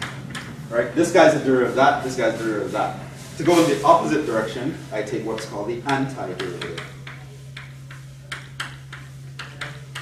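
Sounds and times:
steady low hum: 0:00.0 - 0:10.0
chalk tapping on chalkboard: 0:05.0 - 0:10.0.

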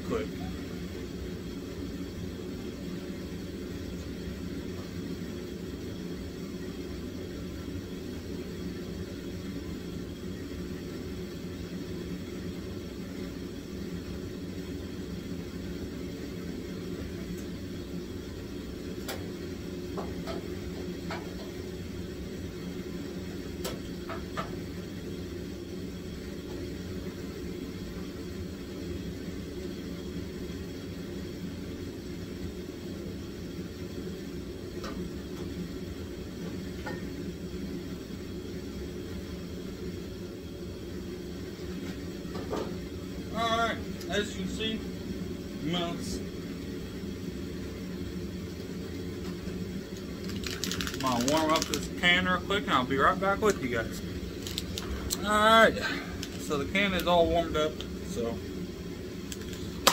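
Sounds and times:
low machine hum: 0:00.0 - 0:59.9.

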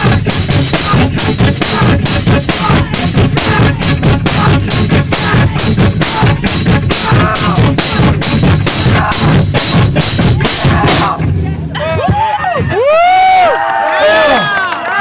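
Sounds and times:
fast hammering drum kit: 0:00.0 - 0:13.2
live band playing loud: 0:00.0 - 0:13.2.

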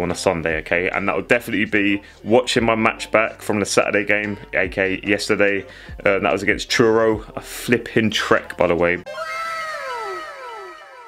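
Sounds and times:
comic falling-pitch sound effect: 0:09.1 - 0:11.0.

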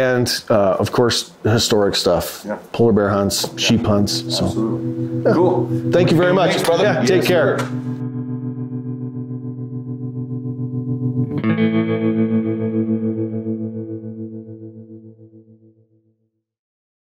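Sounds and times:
electric guitar chords: 0:02.8 - 0:16.0.

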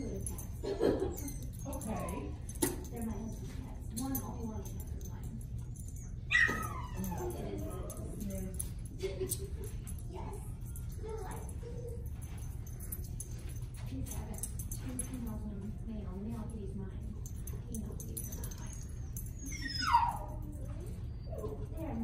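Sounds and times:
low room hum: 0:00.0 - 0:22.0
dog whimper: 0:06.0 - 0:08.3, 0:18.4 - 0:22.0.

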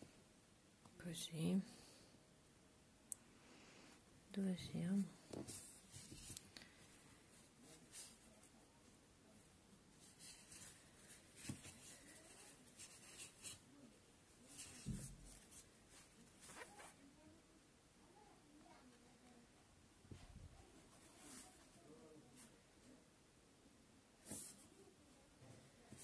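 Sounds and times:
crochet hook scratching yarn: 0:14.5 - 0:17.0.

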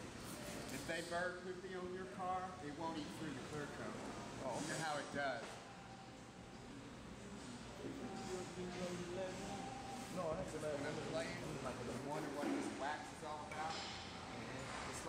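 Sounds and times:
muffled talking: 0:00.7 - 0:15.0.

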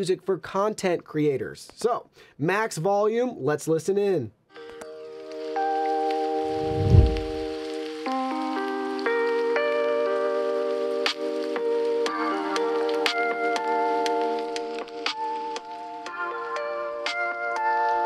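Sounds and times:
low boom: 0:06.6 - 0:07.5
song from phone speaker: 0:10.7 - 0:18.0.

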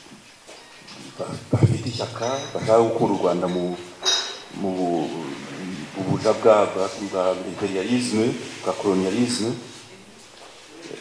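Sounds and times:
man speaking into a microphone: 0:01.2 - 0:10.1.

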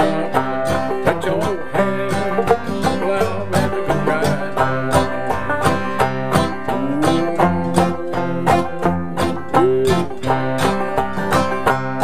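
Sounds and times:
acoustic guitar chords: 0:00.0 - 0:12.0
banjo plucking: 0:00.0 - 0:12.0.

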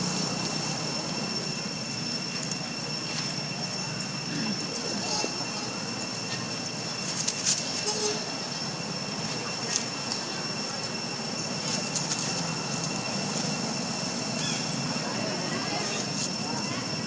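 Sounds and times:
high-pitched whine: 0:00.0 - 0:17.0.

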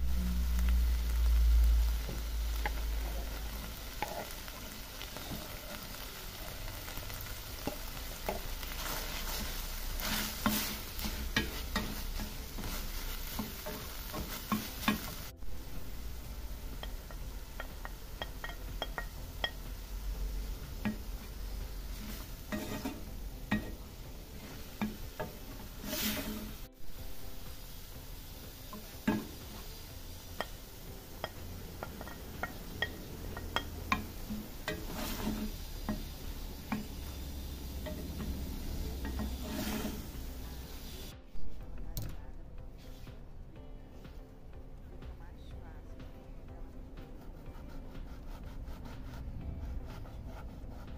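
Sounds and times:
meat and onion sizzling in a pan: 0:00.0 - 0:41.5, 0:47.0 - 0:50.9
spoon scraping pan: 0:02.0 - 0:41.1.

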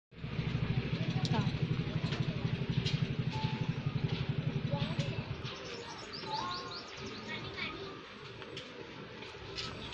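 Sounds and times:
engine running with rapid pulse: 0:00.1 - 0:09.9.

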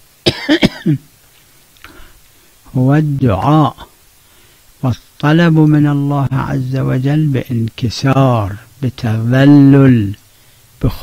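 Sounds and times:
man coughing: 0:00.2 - 0:01.1.

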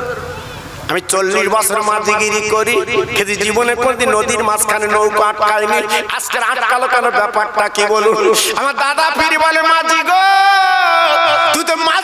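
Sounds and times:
man preaching in sung chant: 0:00.0 - 0:12.0.

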